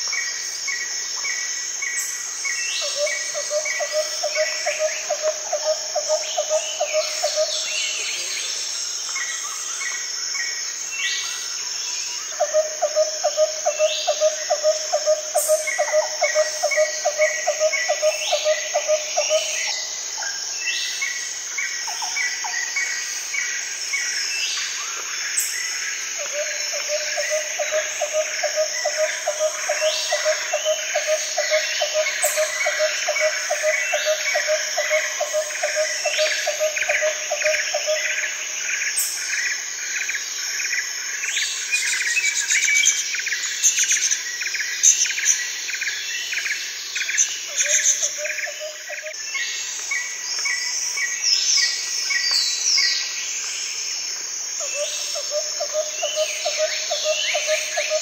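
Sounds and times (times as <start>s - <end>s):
high insect drone: 0.0s - 58.0s.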